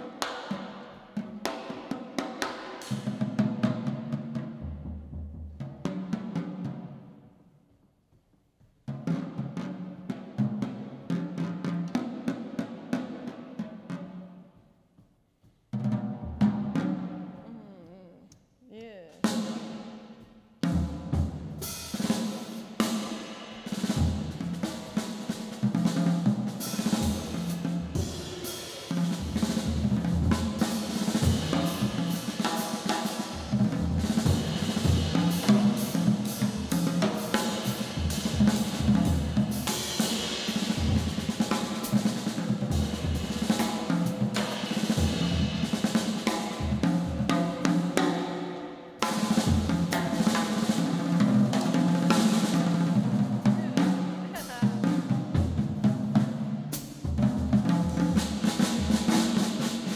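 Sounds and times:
jazz drum kit solo: 0.0s - 7.2s, 8.1s - 59.9s
cymbals: 16.4s - 59.9s.

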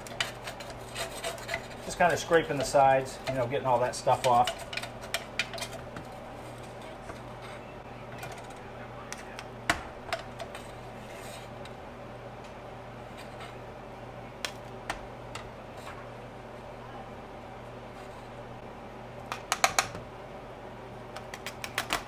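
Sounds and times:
metal spoon scraping and tapping pot: 0.0s - 7.6s
steady low hum: 0.0s - 22.0s.

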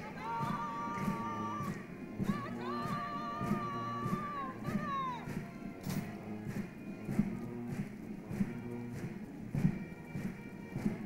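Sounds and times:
held wind instrument note: 0.0s - 11.0s
steady bass drum beat: 0.0s - 11.0s.

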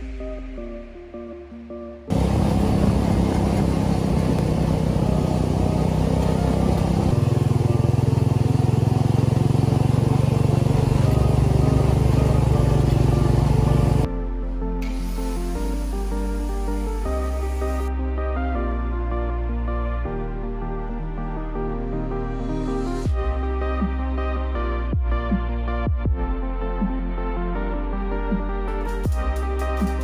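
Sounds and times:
background music: 0.0s - 30.0s
buggy engine running loud: 2.1s - 14.1s.

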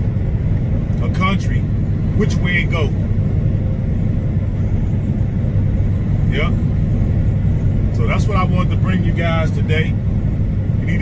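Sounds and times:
truck engine and road drone: 0.0s - 11.0s.

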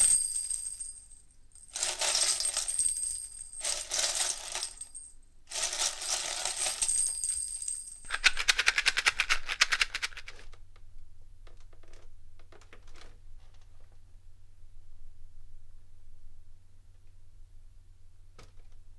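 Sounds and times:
fast rattle of clicks: 8.1s - 10.5s.

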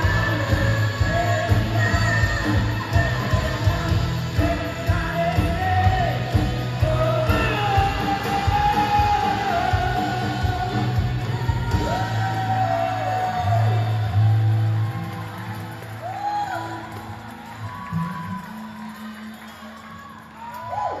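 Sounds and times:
worship band playing: 0.0s - 20.2s.

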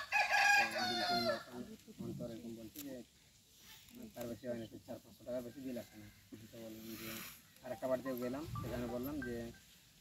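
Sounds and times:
rooster crowing: 0.0s - 1.5s
people talking: 4.0s - 9.6s.

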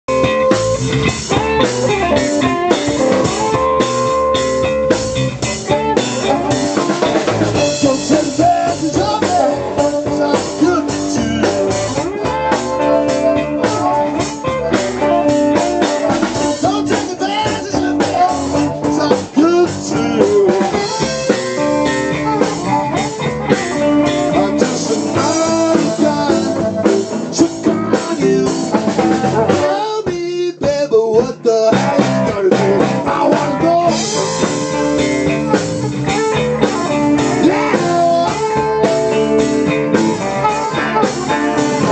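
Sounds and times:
drum kit: 0.0s - 41.9s
electric bass: 0.0s - 41.9s
electric guitar: 0.0s - 41.9s.

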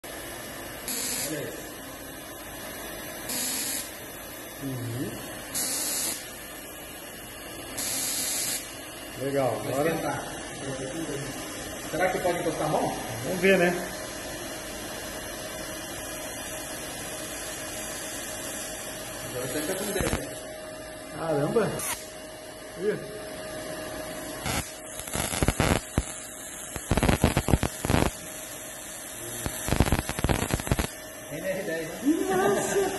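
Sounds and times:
tesla coil humming: 0.0s - 32.9s
tesla coil discharge hissing: 4.6s - 6.4s, 7.8s - 11.3s, 19.3s - 20.4s, 21.8s - 22.1s, 24.4s - 32.9s
sparks crackling: 16.3s - 20.4s, 21.8s - 22.1s, 24.4s - 31.0s.

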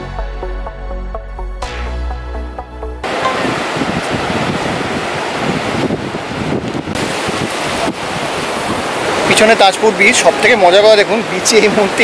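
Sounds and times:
background music: 0.0s - 3.7s
sea waves washing on beach: 3.0s - 12.0s.

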